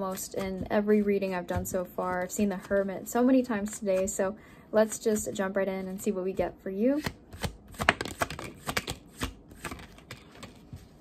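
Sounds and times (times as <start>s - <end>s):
cards being shuffled: 7.0s - 11.0s.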